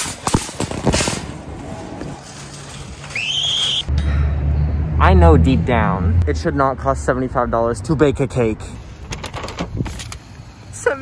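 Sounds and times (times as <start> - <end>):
metal shopping cart clattering: 0.0 - 3.8
wind rumbling on microphone: 9.1 - 10.1.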